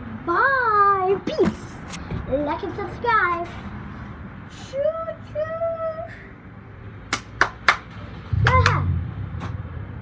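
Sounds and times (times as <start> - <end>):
low outdoor background: 0.0 - 10.0.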